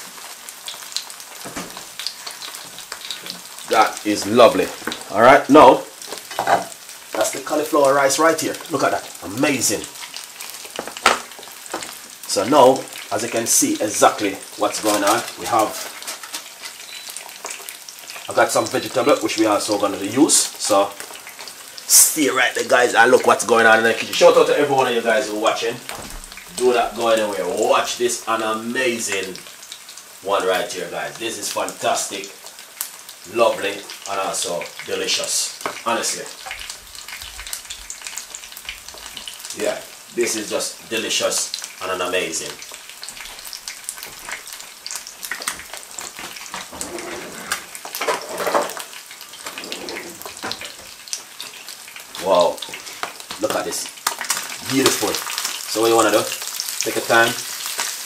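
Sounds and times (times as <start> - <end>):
fish sizzling in oil: 0.0 - 58.0.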